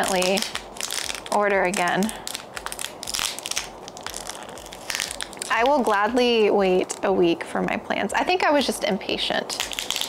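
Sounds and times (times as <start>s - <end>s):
plastic wrapping crinkling: 0.0s - 7.1s, 9.4s - 10.0s.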